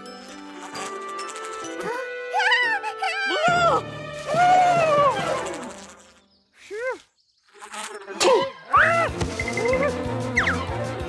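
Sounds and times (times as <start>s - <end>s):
cartoon bee buzzing: 0.2s - 2.3s, 3.9s - 6.3s, 6.9s - 10.8s
cartoon character yelping: 2.3s - 5.4s.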